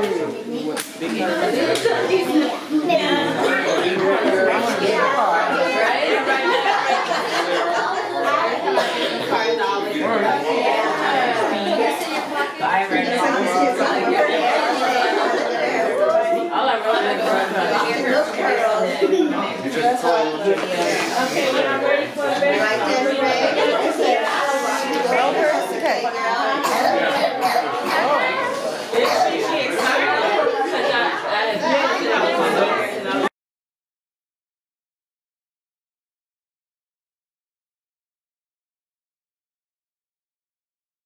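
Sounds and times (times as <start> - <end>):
overlapping chatter: 0.0 - 33.3
people talking over one another: 0.0 - 33.3.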